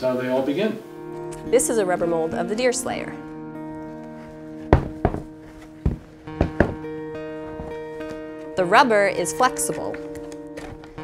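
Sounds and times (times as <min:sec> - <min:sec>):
background music with guitar: 0:00.0 - 0:11.0
rubber mold thumping on workbench: 0:04.7 - 0:06.8.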